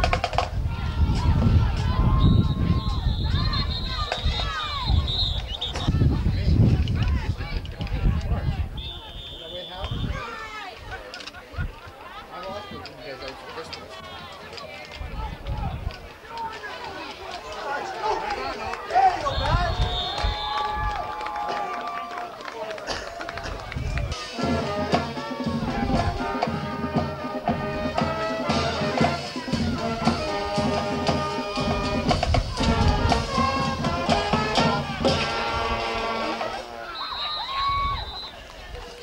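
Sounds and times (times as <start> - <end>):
band music with drums: 0.0 - 4.6, 22.9 - 36.8
crowd noise: 0.0 - 39.0
shrill whistle blast: 2.1 - 5.9, 8.8 - 10.3, 19.2 - 20.8, 36.9 - 38.4.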